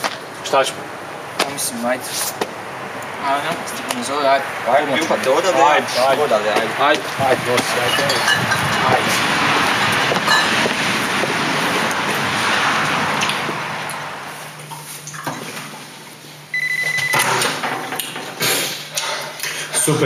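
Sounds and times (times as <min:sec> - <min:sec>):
steady rushing noise: 0:00.0 - 0:16.3
phone ringing electronic trill: 0:16.5 - 0:17.4.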